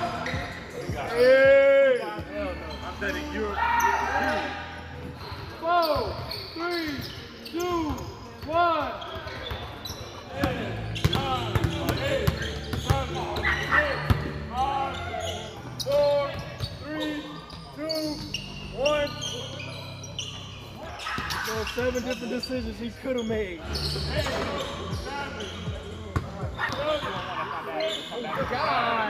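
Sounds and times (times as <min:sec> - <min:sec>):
shoes squeaking on gym floor: 0:05.2 - 0:14.2, 0:14.8 - 0:25.8, 0:26.4 - 0:29.0.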